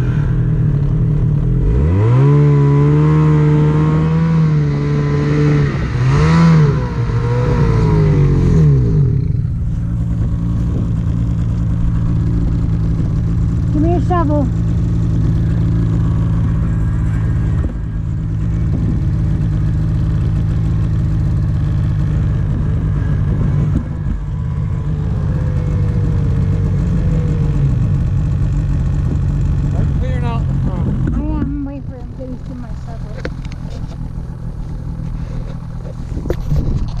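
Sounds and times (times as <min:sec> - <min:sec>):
snowmobile engine idling: 0:00.0 - 0:37.0.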